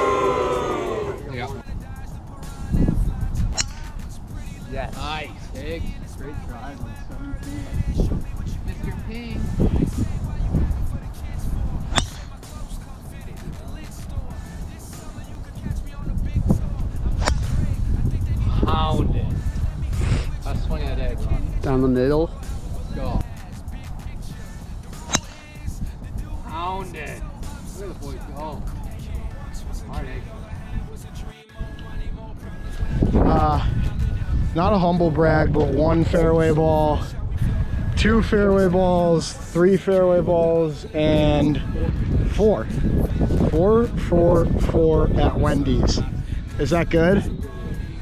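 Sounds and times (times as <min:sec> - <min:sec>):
background music: 0:00.0 - 0:48.0
golf club striking ball: 0:03.5 - 0:04.0, 0:11.9 - 0:12.4, 0:17.2 - 0:17.7, 0:25.0 - 0:25.6.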